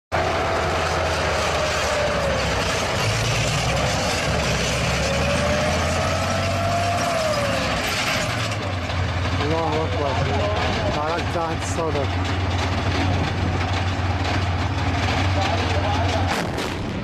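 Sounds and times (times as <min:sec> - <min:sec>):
tank engine running: 0:00.1 - 0:17.0
tracks clattering: 0:00.5 - 0:17.0.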